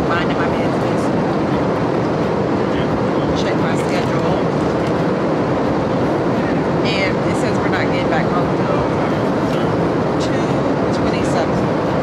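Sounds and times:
jet cabin engine roar: 0:00.0 - 0:12.0.

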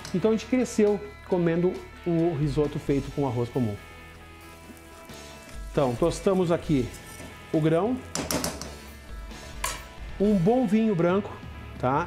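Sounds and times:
quiet background music: 0:00.0 - 0:12.0
spatula scraping rice in saucepan: 0:06.7 - 0:07.4.

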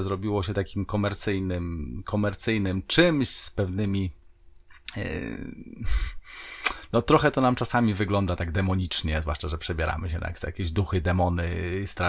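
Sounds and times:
man breathing into microphone: 0:05.8 - 0:06.9
mouth click: 0:06.6 - 0:06.9.

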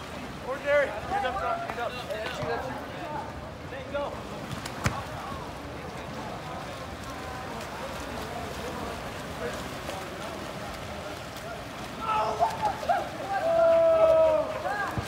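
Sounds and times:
faint distant voices: 0:00.0 - 0:15.0
swimmers splashing in pool: 0:00.0 - 0:15.0.

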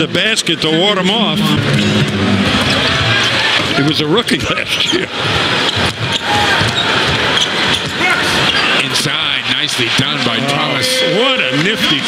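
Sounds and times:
crowd din: 0:00.0 - 0:12.0
basketball bouncing on court: 0:05.2 - 0:08.0.

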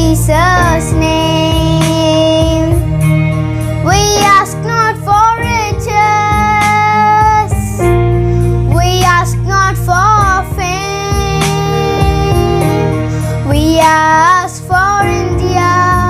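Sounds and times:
girl singing: 0:00.0 - 0:02.9, 0:03.8 - 0:07.9, 0:08.7 - 0:16.0
instrumental backing track: 0:00.0 - 0:16.0.

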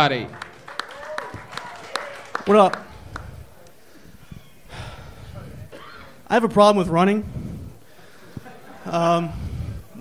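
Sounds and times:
low room rumble: 0:00.3 - 0:10.0
man breathing into microphone: 0:02.9 - 0:05.7, 0:07.2 - 0:10.0.

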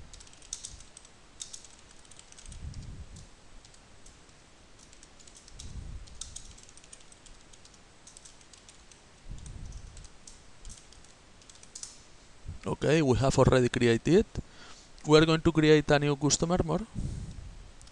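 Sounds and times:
keyboard typing: 0:00.1 - 0:02.9, 0:04.8 - 0:12.0.

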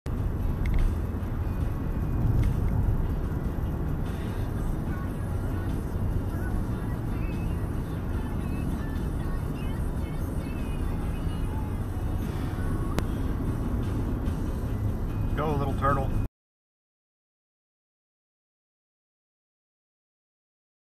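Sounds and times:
car road and engine rumble: 0:00.1 - 0:16.3
faint music: 0:00.6 - 0:16.3.

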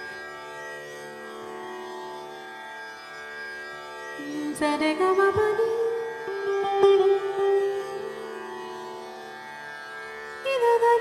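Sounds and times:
woman singing classical melody: 0:04.2 - 0:09.1, 0:10.4 - 0:11.0
plucked electric saz: 0:04.2 - 0:09.8.

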